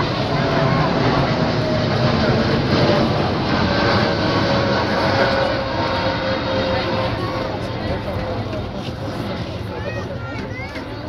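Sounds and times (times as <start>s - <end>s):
faint engine whine: 0.0s - 11.0s
jet engines roaring: 0.0s - 11.0s.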